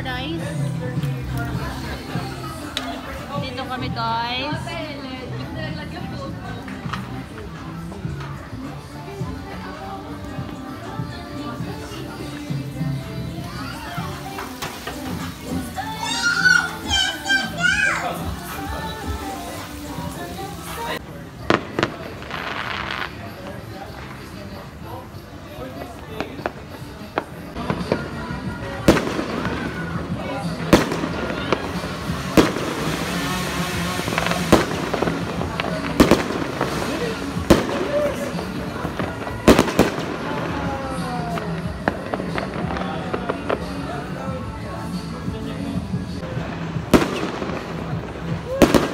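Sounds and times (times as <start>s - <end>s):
background music: 0.0s - 48.9s
voices: 0.0s - 48.9s
children shouting and squealing: 13.2s - 19.5s
fireworks bangs: 18.2s - 24.6s, 25.8s - 44.0s, 46.3s - 48.9s.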